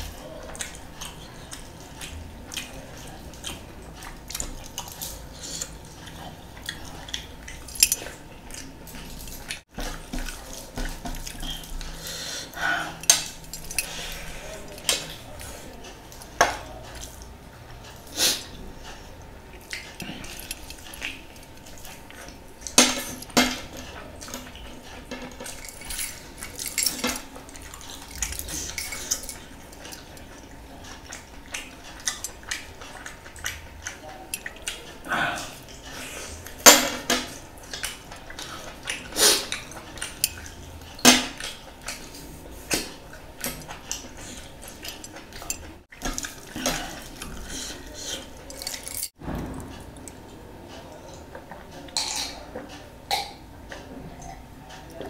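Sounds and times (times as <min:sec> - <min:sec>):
chewing and mouth smacks: 0:00.1 - 0:12.0, 0:18.8 - 0:35.0, 0:37.3 - 0:50.3.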